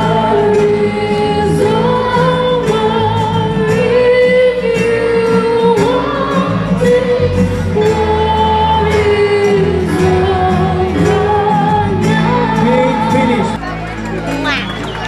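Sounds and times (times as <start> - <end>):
woman singing with vibrato: 0.0 - 13.6
strummed acoustic guitars: 0.0 - 15.0.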